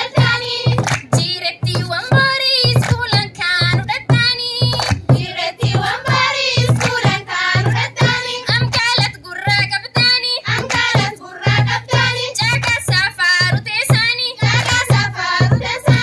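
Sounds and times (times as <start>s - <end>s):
girls singing through microphone: 0.0s - 16.0s
hand drum beat: 0.0s - 16.0s.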